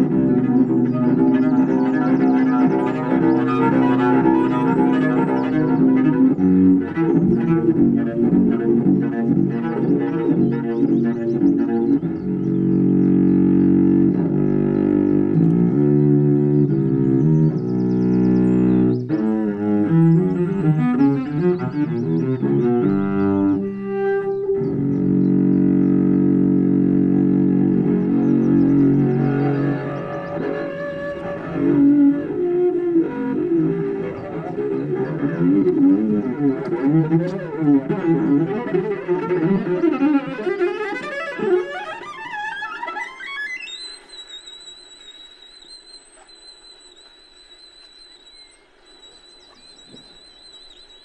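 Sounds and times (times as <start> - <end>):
bowed solo cello: 0.0 - 46.3.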